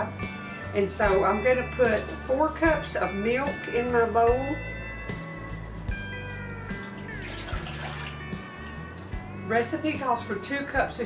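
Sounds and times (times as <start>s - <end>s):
background music: 0.0s - 11.0s
milk pouring into a bowl: 6.8s - 8.4s.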